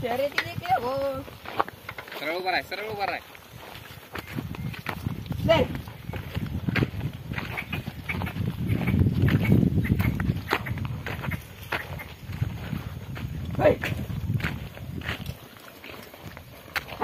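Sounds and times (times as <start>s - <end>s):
clatter and knocks of hooves: 0.0s - 17.0s
wooden hoe rumbling through soil: 0.0s - 17.0s
man calling to bullocks: 2.1s - 3.3s, 5.4s - 5.8s, 13.5s - 14.1s.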